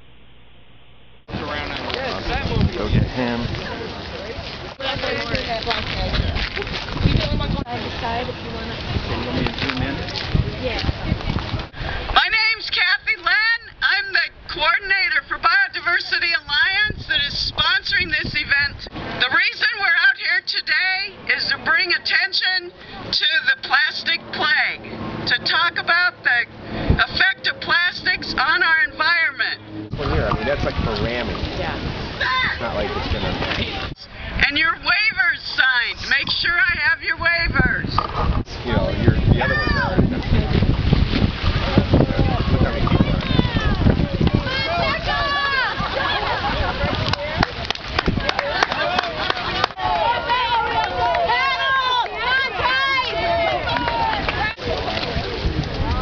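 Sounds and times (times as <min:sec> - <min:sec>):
wind buffeting microphone: 0:01.3 - 0:19.3, 0:26.3 - 0:56.0
woman speaking through megaphone: 0:04.8 - 0:06.4, 0:07.0 - 0:11.3, 0:12.1 - 0:29.6, 0:33.9 - 0:38.0, 0:42.4 - 0:47.6, 0:49.4 - 0:54.6
people shouting: 0:32.2 - 0:32.6, 0:39.4 - 0:40.0, 0:43.0 - 0:46.7, 0:48.4 - 0:54.6.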